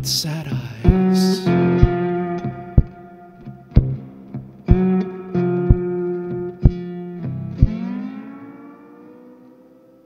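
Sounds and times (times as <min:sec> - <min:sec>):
lap steel guitar chord ringing: 0:01.0 - 0:10.0.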